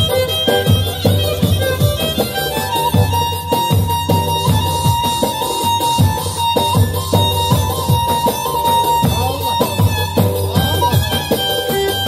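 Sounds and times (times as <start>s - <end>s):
folk dance band over loudspeakers: 0.0s - 12.0s
keyboard and lute melody: 0.0s - 12.0s
steady drum beat: 0.0s - 12.0s.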